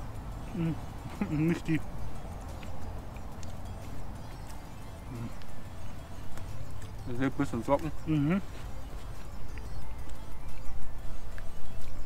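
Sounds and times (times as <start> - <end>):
low outdoor rumble: 0.0 - 12.0
person humming: 0.4 - 1.6, 5.0 - 5.5.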